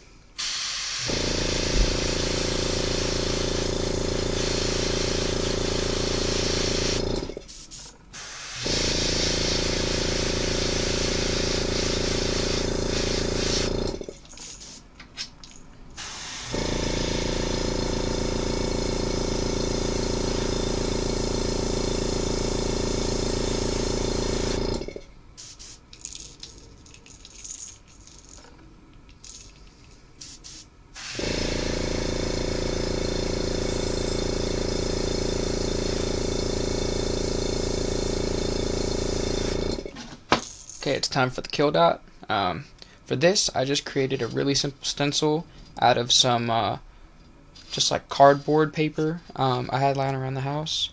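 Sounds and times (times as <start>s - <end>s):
airbrush compressor hum and hiss: 0.0s - 14.9s, 16.0s - 26.0s, 30.1s - 39.9s.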